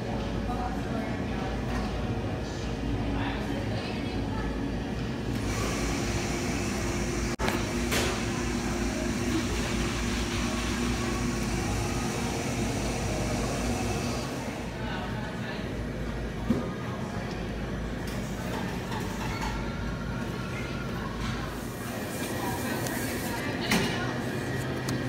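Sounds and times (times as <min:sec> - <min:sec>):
indistinct chatter: 0:00.0 - 0:25.0
steady room hum: 0:00.0 - 0:25.0.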